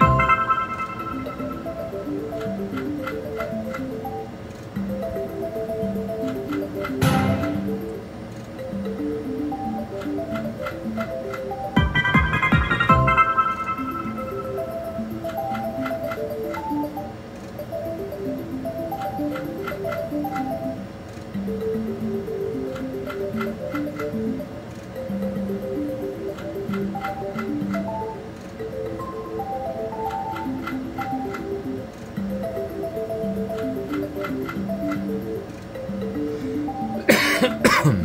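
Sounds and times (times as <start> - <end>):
reels stopping ticks: 0.0 - 12.0, 13.4 - 36.9
slot machine reel music: 0.0 - 37.8.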